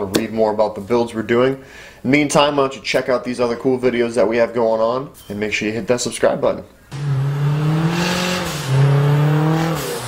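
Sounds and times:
car engine accelerating hard: 0:06.9 - 0:10.0.

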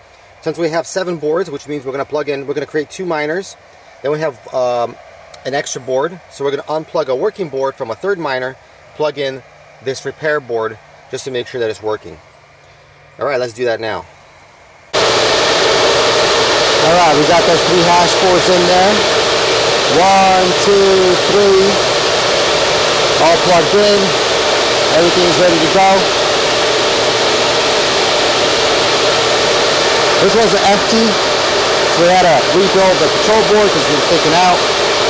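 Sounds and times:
cooling fans rushing air: 0:00.0 - 0:35.0.

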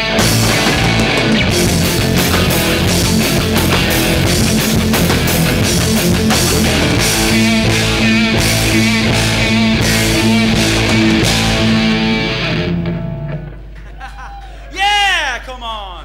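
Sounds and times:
drum kit and cymbals: 0:00.0 - 0:12.7
bass guitar: 0:00.0 - 0:13.8
electric guitars: 0:00.0 - 0:14.0.

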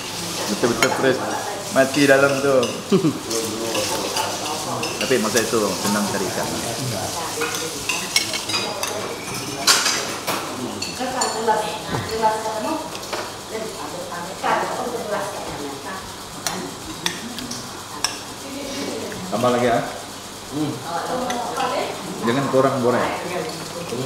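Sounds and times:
cutlery clinking on plates: 0:00.6 - 0:06.6, 0:07.4 - 0:12.2
low voices: 0:02.8 - 0:24.0.

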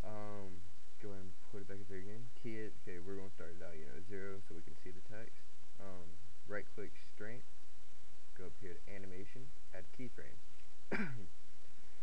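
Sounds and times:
man clearing his throat: 0:10.9 - 0:11.3.

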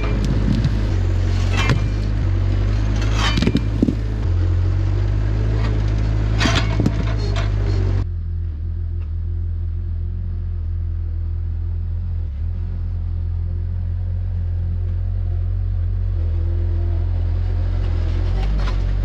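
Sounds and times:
loader engine running: 0:00.0 - 0:19.0.

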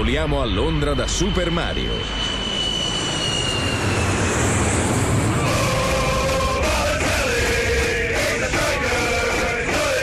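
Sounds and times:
jet engine whine: 0:00.0 - 0:10.0.

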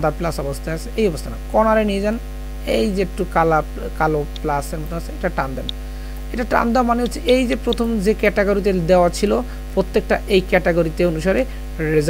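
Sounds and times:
electrical mains hum: 0:00.0 - 0:12.0
person speaking: 0:00.0 - 0:12.0.

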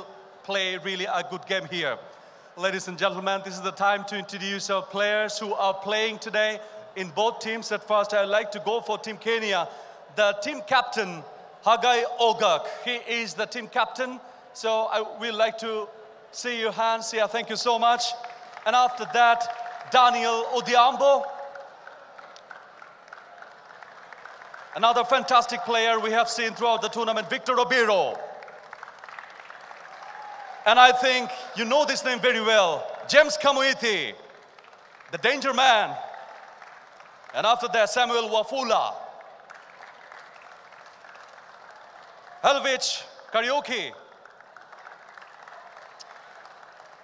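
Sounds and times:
faint crowd applause: 0:16.4 - 0:47.0
faint hand clapping: 0:21.2 - 0:24.8, 0:28.0 - 0:30.6, 0:34.2 - 0:35.2, 0:35.9 - 0:37.4, 0:39.2 - 0:42.4, 0:43.2 - 0:47.0.

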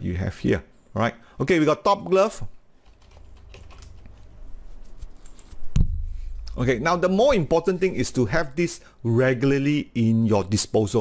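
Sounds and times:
computer keyboard typing: 0:02.8 - 0:04.3.

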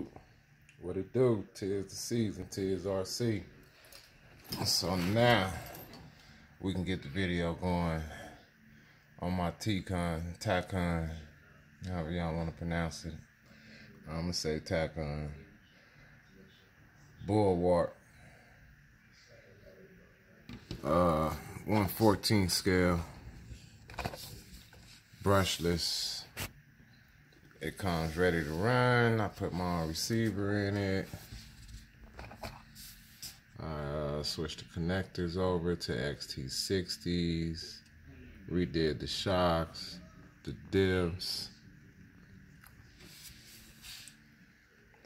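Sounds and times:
faint handling noise: 0:21.5 - 0:26.6.

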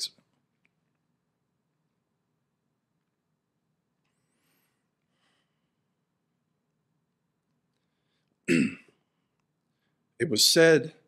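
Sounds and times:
man clearing throat: 0:08.5 - 0:09.0.

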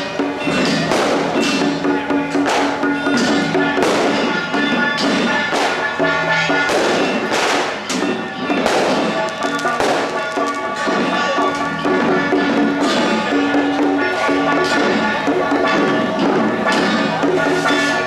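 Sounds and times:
percussion crashes: 0:00.0 - 0:18.0.

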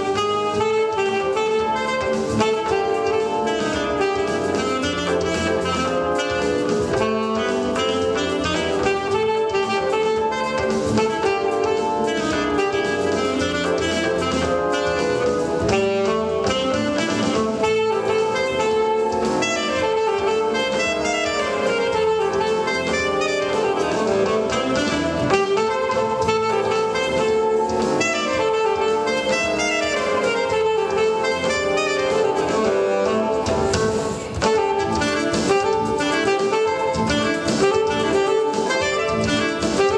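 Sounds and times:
alto saxophone jazz melody: 0:00.0 - 0:39.9
backing music with steady beat: 0:00.0 - 0:39.9.

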